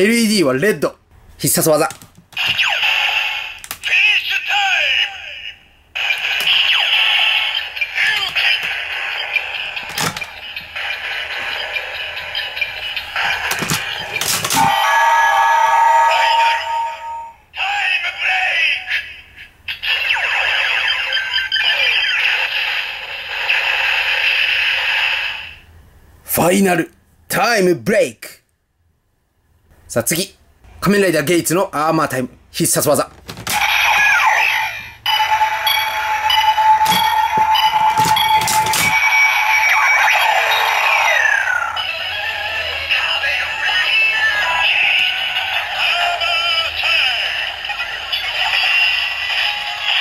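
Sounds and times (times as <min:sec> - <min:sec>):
synthetic announcer voice: 0:03.8 - 0:05.6, 0:07.8 - 0:08.8
toy electronic music: 0:06.0 - 0:15.1, 0:33.7 - 0:50.0
steady beeping tone: 0:09.0 - 0:17.4, 0:35.0 - 0:42.0.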